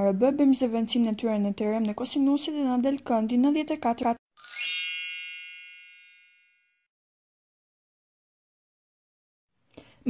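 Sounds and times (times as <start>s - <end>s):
bright bell-like chime: 4.4s - 6.9s.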